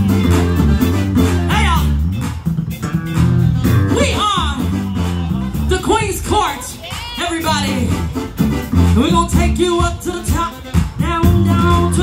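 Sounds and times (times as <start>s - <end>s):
bass guitar: 0.0s - 12.0s
guitar: 0.0s - 12.0s
live band playing: 0.0s - 12.0s.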